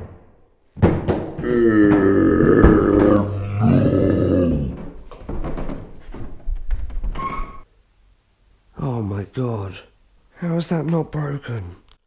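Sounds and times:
man groaning cry: 1.4 - 4.8
phone clattering down stairs: 4.8 - 7.6.

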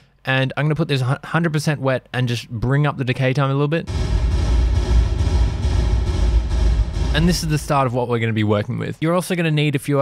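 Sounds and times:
dense reverb bass rumble: 3.9 - 8.4.

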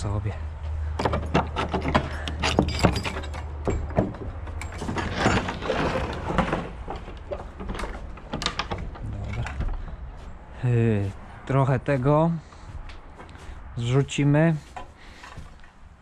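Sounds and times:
heavy wooden door scraping open: 4.6 - 10.1.

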